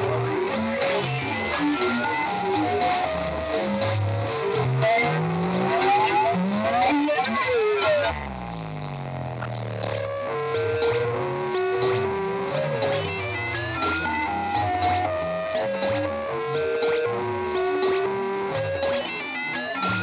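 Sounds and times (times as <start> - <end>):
warbling synth tones: 7.8 - 20.0.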